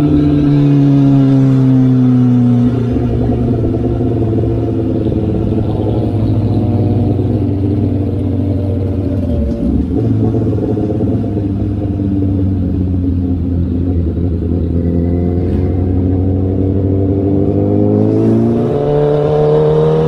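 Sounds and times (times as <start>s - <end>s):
motorcycle engine cruising: 0.0s - 20.0s.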